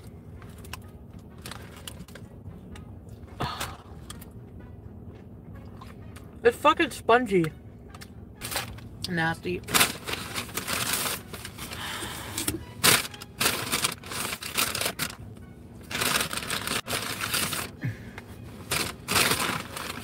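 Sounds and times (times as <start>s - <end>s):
paper bag and wrappers crinkling: 0.4s - 2.2s, 9.6s - 12.1s, 12.8s - 15.2s, 15.9s - 17.8s, 18.6s - 20.0s.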